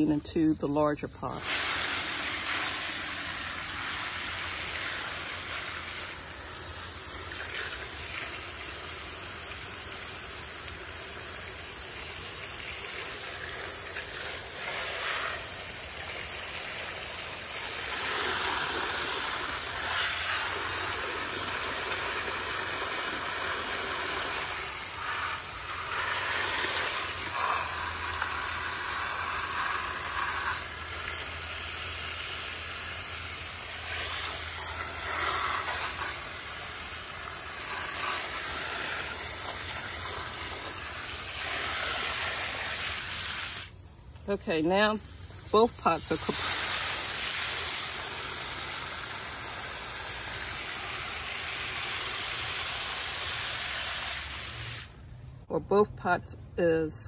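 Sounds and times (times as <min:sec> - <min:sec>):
hose water splashing into pot: 0:00.0 - 0:55.1.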